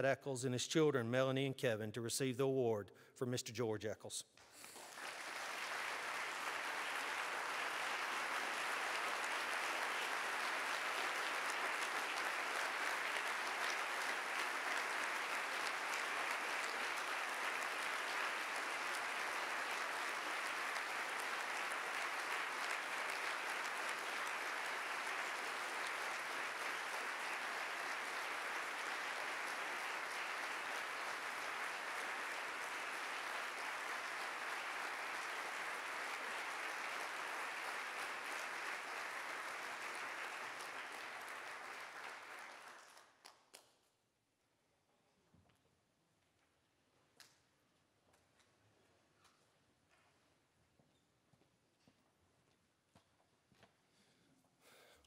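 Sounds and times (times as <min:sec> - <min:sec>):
audience applause: 0:04.6 - 0:43.2.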